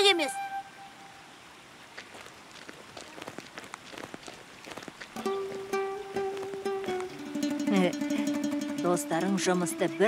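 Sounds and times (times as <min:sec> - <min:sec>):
soft hiss: 0:00.0 - 0:10.0
footsteps through dry grass: 0:01.8 - 0:07.5.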